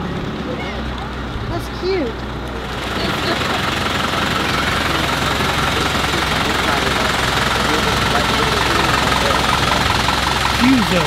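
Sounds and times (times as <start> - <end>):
minibus engine running: 0.0 - 11.0.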